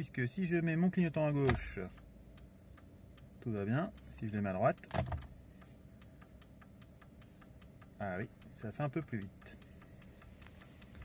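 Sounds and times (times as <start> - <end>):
turn signal flasher ticking: 0.0 - 11.0.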